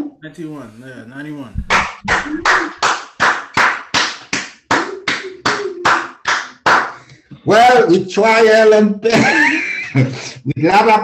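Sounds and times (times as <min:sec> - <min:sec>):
person clapping hands: 0:01.6 - 0:07.2.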